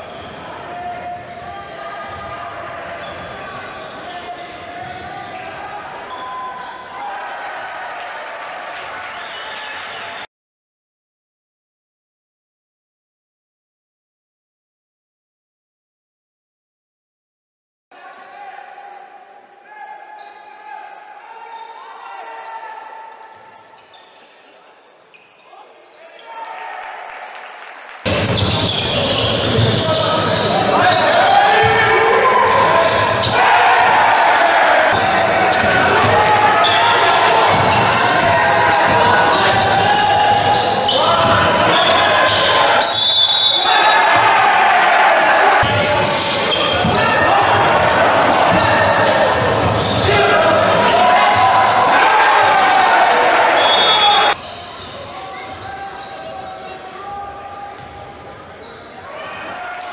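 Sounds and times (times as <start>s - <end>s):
voices echoing in gym: 0.0s - 7.9s, 18.0s - 59.9s.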